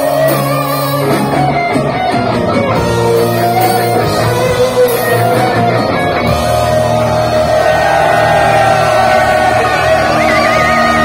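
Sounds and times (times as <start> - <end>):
distorted electric guitar: 0.0 - 11.0
live heavy metal band: 0.0 - 11.0.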